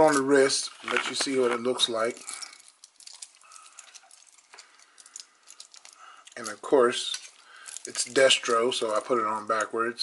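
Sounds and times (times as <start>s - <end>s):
metal bracelet clicks and clinks: 2.1s - 8.9s.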